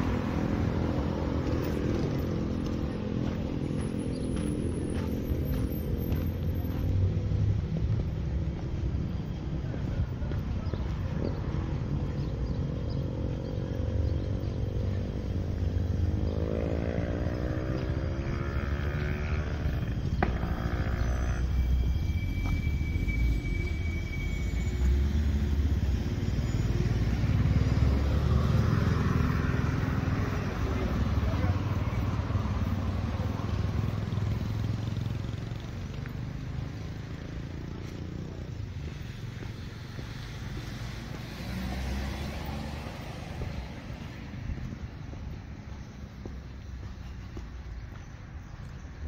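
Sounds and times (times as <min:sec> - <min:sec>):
passing motor vehicles: 0:00.0 - 0:49.0.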